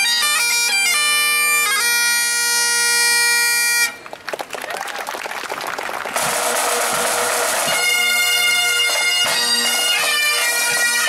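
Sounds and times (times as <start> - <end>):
bagpipes playing over drones: 0.0 - 4.0, 6.2 - 11.0
pipe band bagpipes: 0.0 - 4.0, 6.1 - 11.0
crowd clapping: 3.9 - 11.0.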